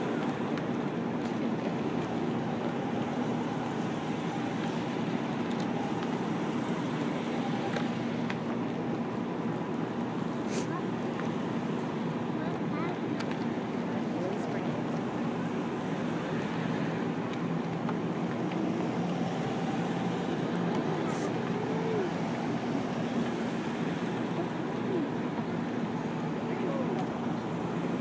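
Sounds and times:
car engines humming: 0.0s - 28.0s
tyre noise on road: 0.0s - 28.0s
faint voices: 12.2s - 17.1s, 20.6s - 28.0s.

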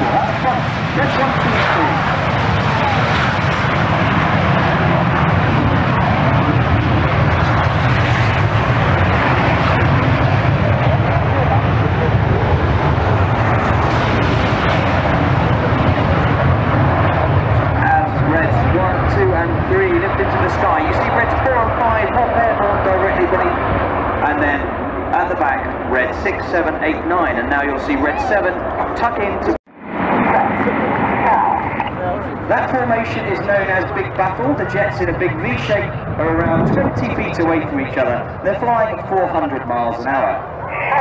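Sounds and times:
voices: 0.0s - 3.3s, 17.6s - 29.6s, 30.2s - 41.0s
loud jet noise: 0.0s - 41.0s.

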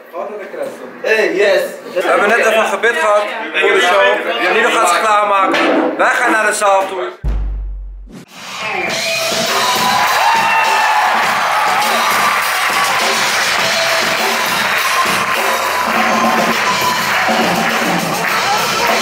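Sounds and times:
drums: 7.2s - 19.0s
audience cheering and whooping: 9.1s - 18.0s.

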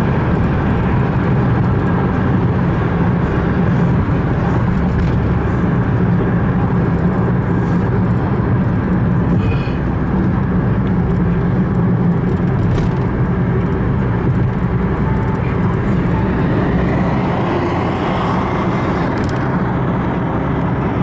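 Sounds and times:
car road noise from inside: 0.0s - 21.0s.

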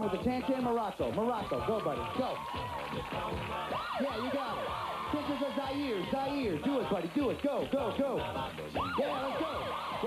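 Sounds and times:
game show background music: 0.0s - 10.0s.

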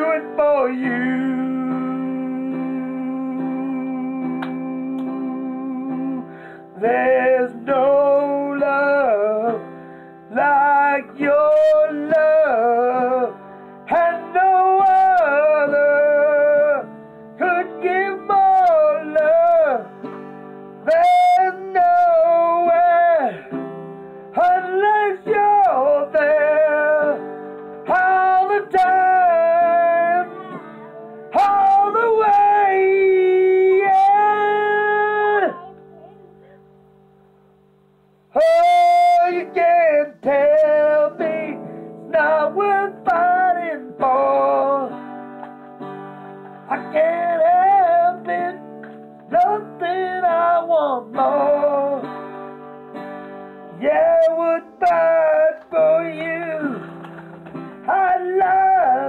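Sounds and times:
man singing: 0.0s - 9.7s, 10.3s - 20.2s, 20.8s - 23.6s, 24.4s - 35.7s, 38.3s - 45.9s, 46.5s - 52.5s, 53.7s - 57.0s, 57.8s - 59.0s
strummed acoustic guitar: 0.0s - 59.0s.

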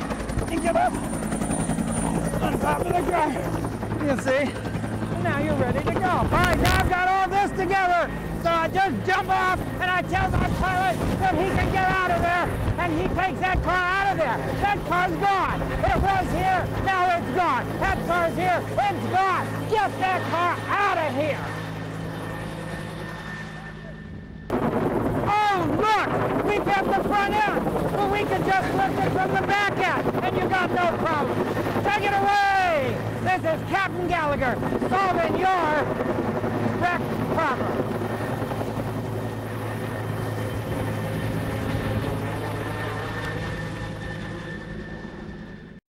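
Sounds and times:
helicopter flying overhead: 0.0s - 45.8s.

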